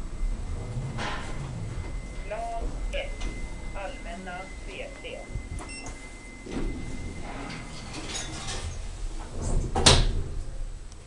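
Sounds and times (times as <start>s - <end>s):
people talking: 2.2s - 3.2s, 3.8s - 5.3s.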